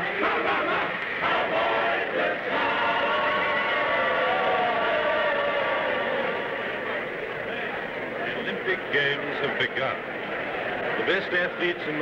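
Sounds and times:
choir singing a long held note: 0:00.0 - 0:06.9.

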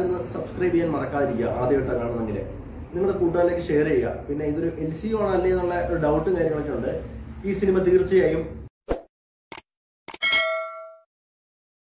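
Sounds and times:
quick clicks: 0:09.5 - 0:10.2
bell ding: 0:10.2 - 0:11.1.

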